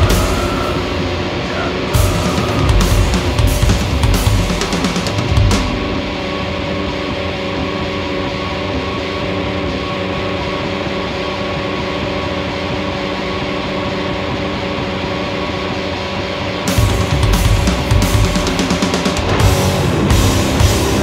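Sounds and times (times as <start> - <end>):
drum kit crashing: 0.0 - 7.0, 16.7 - 21.0
guitars and bass droning: 0.0 - 21.0.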